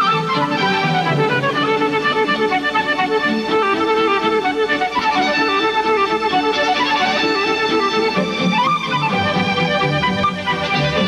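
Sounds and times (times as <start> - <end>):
flute playing quick melody: 0.0 - 11.0
lower accompaniment: 0.0 - 11.0.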